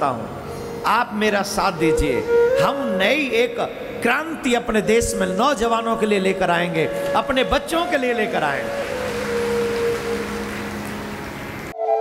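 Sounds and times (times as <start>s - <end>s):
sustained musical note: 6.6s - 12.0s
audience applauding: 7.2s - 11.8s.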